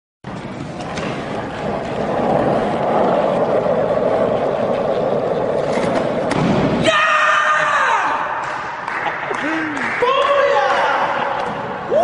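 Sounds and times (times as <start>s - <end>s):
skateboard wheels rolling: 0.3s - 8.0s.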